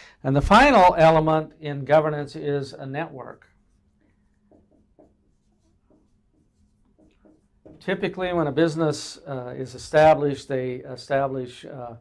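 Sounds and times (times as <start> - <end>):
marker writing on whiteboard: 3.4 - 8.6.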